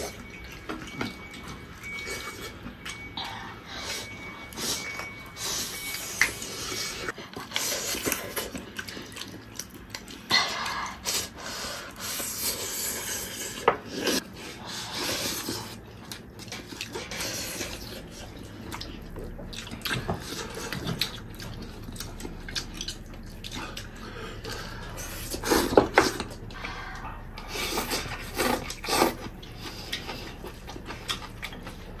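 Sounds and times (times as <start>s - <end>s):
chewing and slurping: 0.0s - 32.0s.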